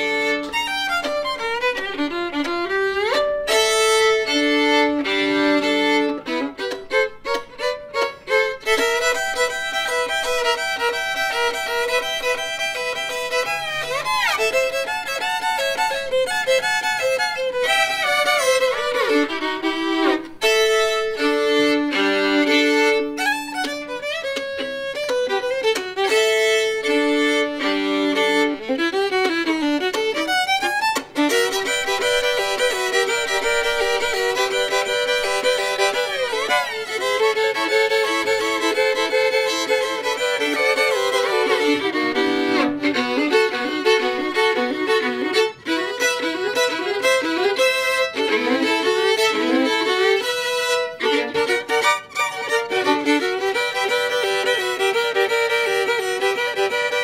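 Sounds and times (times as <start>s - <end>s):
two fiddles playing: 0.0s - 57.0s.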